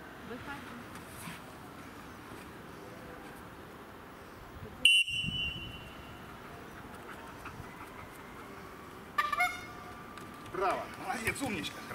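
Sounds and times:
shrill whistle blast: 4.9 - 6.0.

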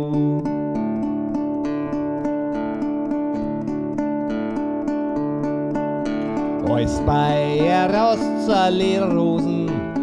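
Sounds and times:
plucked lute-type instrument: 0.0 - 10.0.

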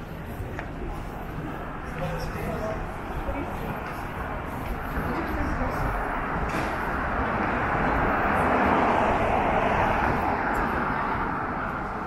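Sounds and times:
car passing: 0.0 - 12.0
voices of passers-by: 0.0 - 12.0.

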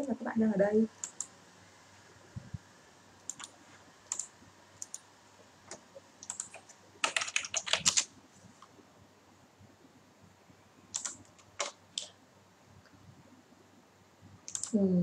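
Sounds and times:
keyboard typing: 1.0 - 1.3, 3.2 - 5.0, 5.7 - 8.1, 10.9 - 12.1, 14.4 - 14.8
person speaking: 14.6 - 15.0.

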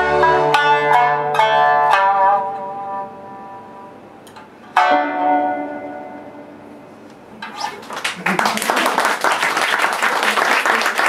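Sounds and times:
plucked shamisen notes: 0.0 - 7.9.

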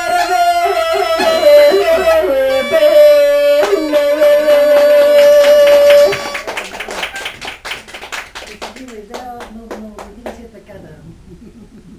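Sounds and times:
bagpipe playing over drone: 0.0 - 6.5
hand clapping: 3.5 - 10.4.

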